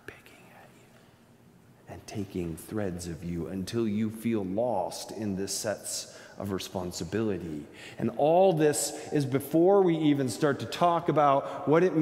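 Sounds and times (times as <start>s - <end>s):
man speaking: 1.8s - 12.0s.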